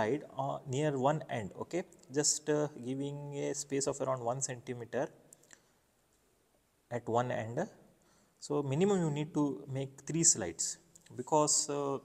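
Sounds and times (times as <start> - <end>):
person speaking: 8.4 - 12.0.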